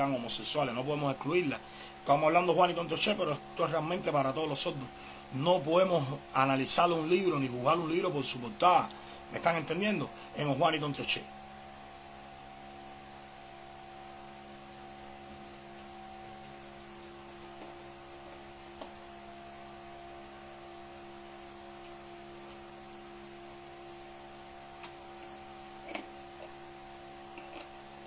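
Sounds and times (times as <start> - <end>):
electrical hum with hiss: 0.0 - 28.0.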